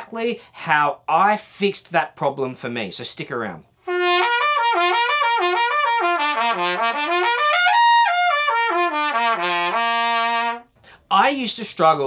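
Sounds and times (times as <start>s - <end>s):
trumpet playing lip slurs: 3.8s - 10.9s.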